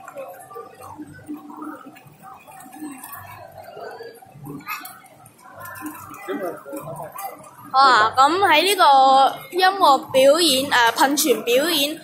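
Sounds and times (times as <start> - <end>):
fountain water bubbling: 0.0 - 12.0.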